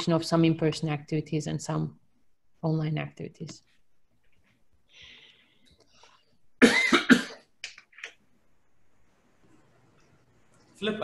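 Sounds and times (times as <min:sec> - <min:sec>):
person coughing: 0:06.6 - 0:07.5.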